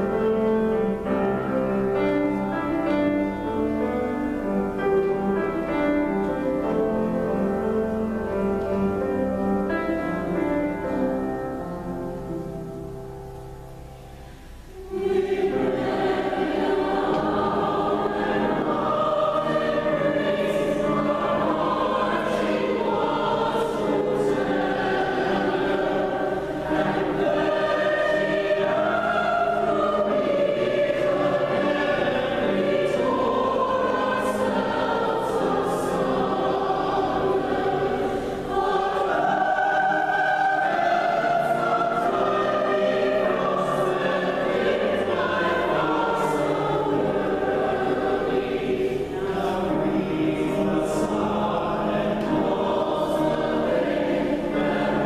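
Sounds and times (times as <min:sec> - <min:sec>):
mixed choir singing: 0:00.0 - 0:12.8, 0:14.6 - 0:55.0.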